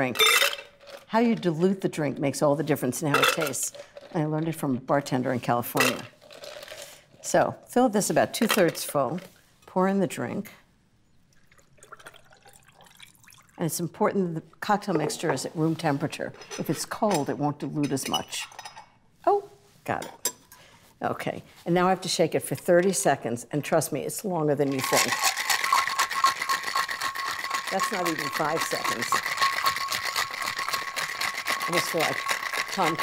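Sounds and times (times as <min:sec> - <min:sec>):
ice rattling in cocktail shaker: 0:05.7 - 0:06.9, 0:24.6 - 0:33.0
liquid trickling onto ice: 0:11.3 - 0:13.6.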